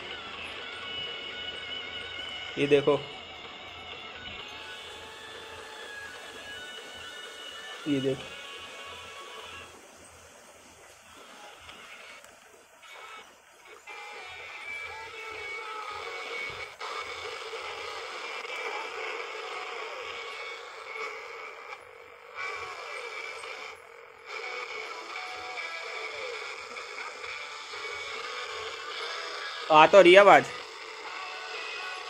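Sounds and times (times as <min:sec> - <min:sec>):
pocket radio playing music: 0:00.0 - 0:32.0.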